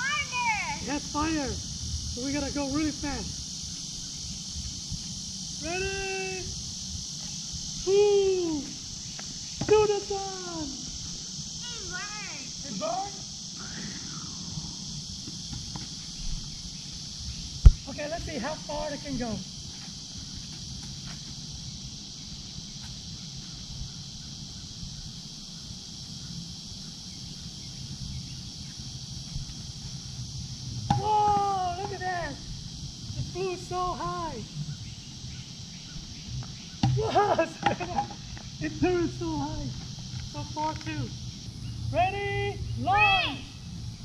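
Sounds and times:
insects buzzing: 0:00.0 - 0:44.0
drawn-out vocal call: 0:10.4 - 0:15.1.

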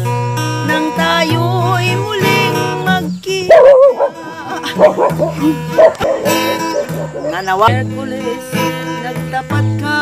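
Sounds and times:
acoustic guitar playing: 0:00.0 - 0:10.0
dog barking loudly: 0:03.5 - 0:07.6.

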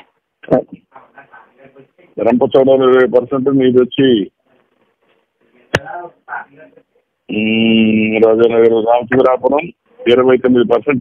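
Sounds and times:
man talking on telephone: 0:02.2 - 0:04.4, 0:07.3 - 0:11.0.

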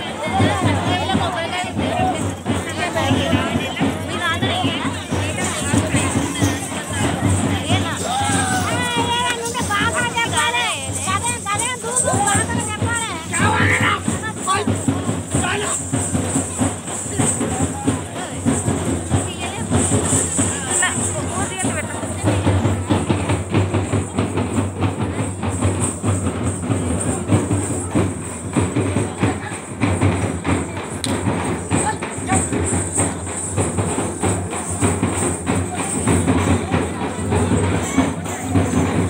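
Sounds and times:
crowd voices and shouts: 0:00.0 - 0:39.0
drums and jingling percussion: 0:00.0 - 0:39.0.

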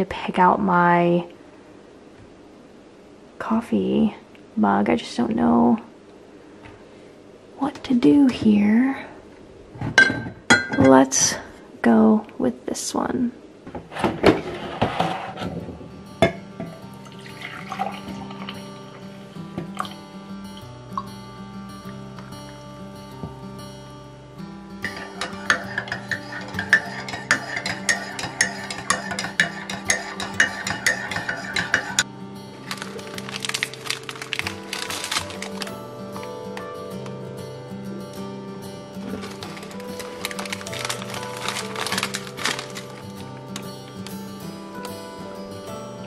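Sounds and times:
soft background music: 0:15.2 - 0:46.0
plastic wrapper crinkling: 0:32.6 - 0:36.6, 0:38.9 - 0:45.0.

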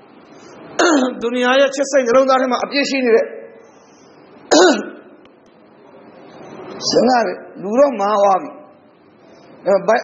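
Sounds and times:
low room noise: 0:00.0 - 0:10.0
man clearing throat: 0:00.8 - 0:01.2, 0:04.5 - 0:05.1.

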